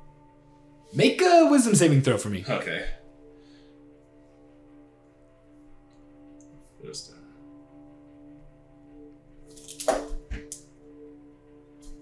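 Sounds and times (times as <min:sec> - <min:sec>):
ambient background music: 0:00.0 - 0:12.0.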